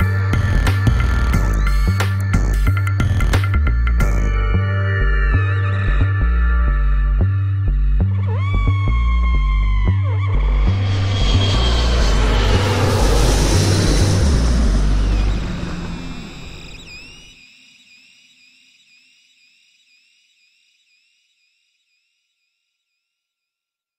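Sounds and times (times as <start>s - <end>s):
deep bass notes: 0.0s - 17.3s
whooshing swell: 10.4s - 17.3s.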